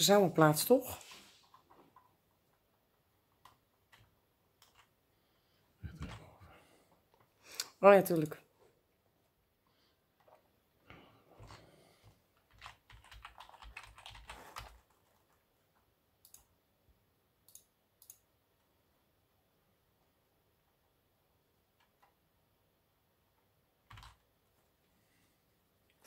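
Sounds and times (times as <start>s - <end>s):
faint keyboard typing: 0.9s - 8.5s, 9.6s - 16.7s, 17.4s - 18.7s, 21.6s - 22.5s, 23.3s - 24.8s.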